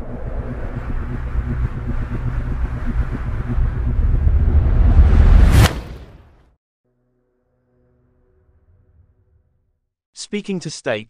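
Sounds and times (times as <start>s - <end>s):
low rumbling electronic swell: 0.0s - 5.7s.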